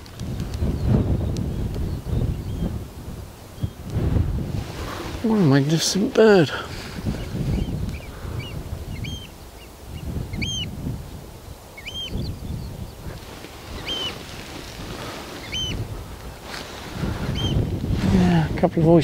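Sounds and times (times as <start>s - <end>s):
wind rumble on microphone: 0.0s - 19.0s
oystercatchers piping calls: 7.2s - 10.8s, 11.8s - 12.7s, 13.7s - 14.2s, 15.4s - 15.9s, 17.2s - 17.6s.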